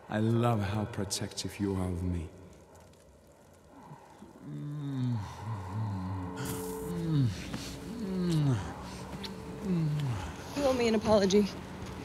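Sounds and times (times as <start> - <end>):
deep vocal groans: 4.2 - 10.4.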